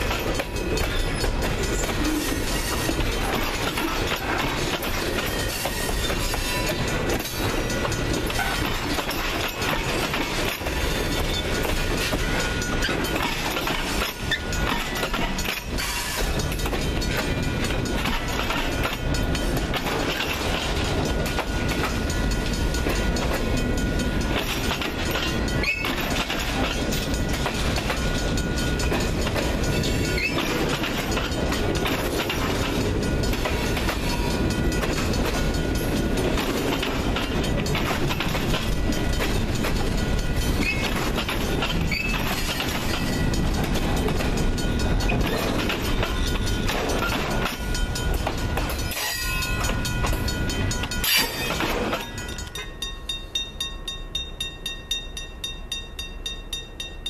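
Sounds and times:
wheels clattering over rail joints: 0:00.0 - 0:52.9
freight train rumbling past: 0:00.0 - 0:57.0.

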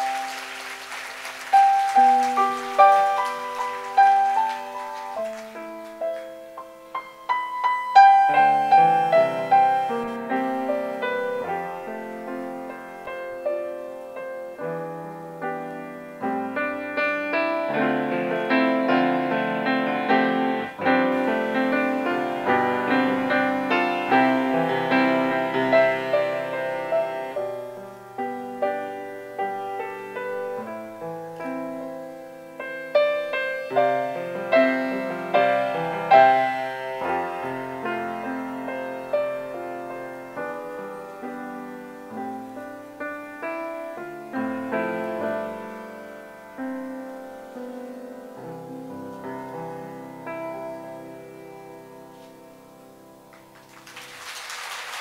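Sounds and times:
piano playing: 0:00.0 - 0:55.0.

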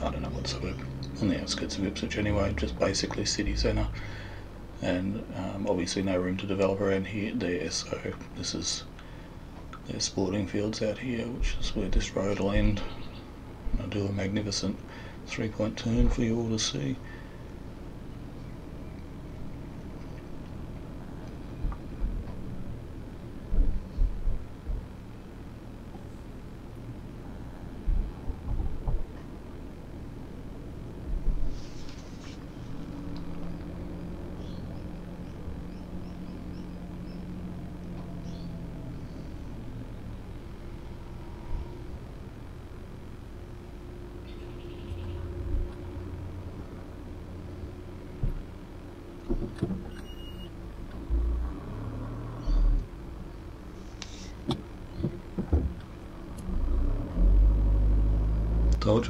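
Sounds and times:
car engine running at low speed: 0:00.0 - 0:59.0
short low thumps: 0:23.4 - 0:25.1, 0:27.8 - 0:29.2.

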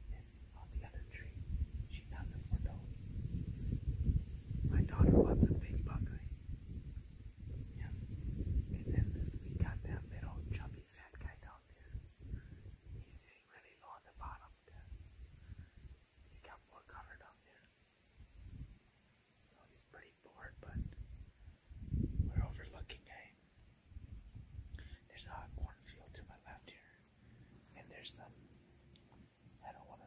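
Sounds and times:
person whispering: 0:00.0 - 0:03.0, 0:04.6 - 0:06.4, 0:07.7 - 0:15.0, 0:16.3 - 0:17.7, 0:19.4 - 0:21.0, 0:22.2 - 0:23.4, 0:24.8 - 0:28.4, 0:29.6 - 0:30.0
low rumble on microphone: 0:00.0 - 0:13.2, 0:20.3 - 0:23.3.

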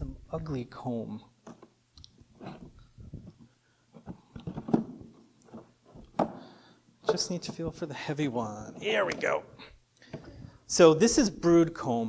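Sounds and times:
wood knocking and scraping on wood: 0:01.4 - 0:07.8.

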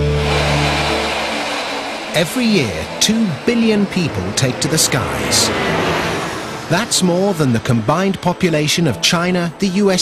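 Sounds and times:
theme music chord: 0:00.0 - 0:06.7
jet engines rushing: 0:00.0 - 0:10.0.

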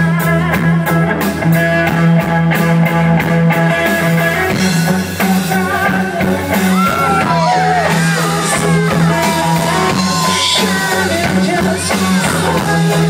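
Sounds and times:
drum kit beat: 0:00.0 - 0:13.0
electric guitar: 0:00.0 - 0:13.0
keyboard: 0:00.0 - 0:13.0.

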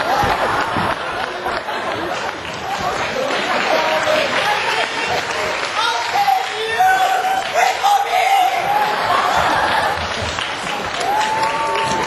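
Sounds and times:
audience applauding: 0:00.0 - 0:12.0
voices calling out and cheering: 0:00.0 - 0:12.0.

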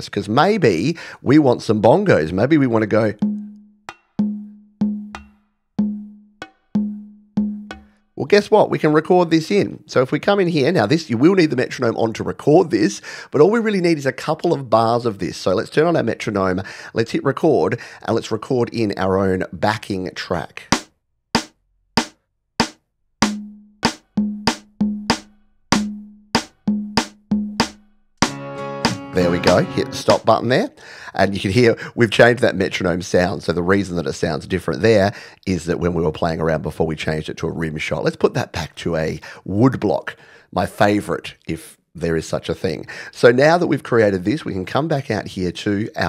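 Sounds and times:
sampled bongo hits: 0:03.1 - 0:08.2, 0:20.7 - 0:30.3.

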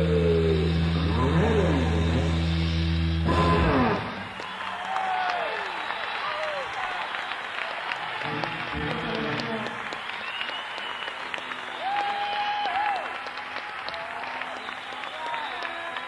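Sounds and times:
concert audience applauding: 0:03.3 - 0:16.0
held whistle-like tones: 0:09.9 - 0:12.3, 0:14.5 - 0:15.8.

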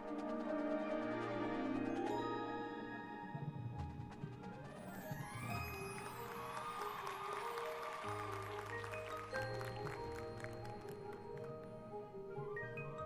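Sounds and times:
percussion: 0:00.0 - 0:13.0.

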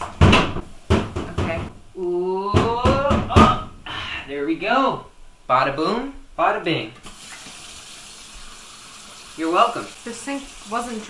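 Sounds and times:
water running into sink: 0:07.0 - 0:11.0.

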